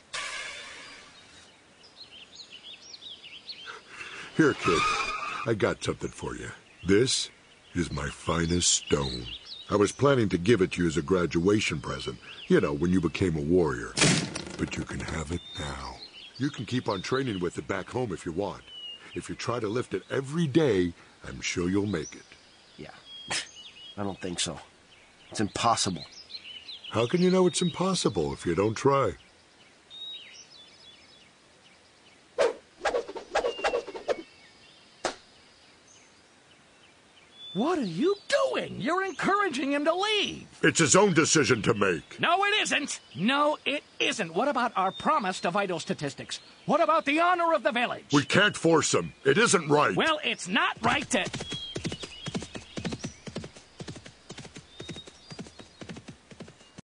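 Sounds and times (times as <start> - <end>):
faint bird chirps: 0.0 - 14.0, 14.6 - 56.8
knocks and rustles: 14.0 - 15.2
horse hooves clip-clopping: 50.8 - 56.8.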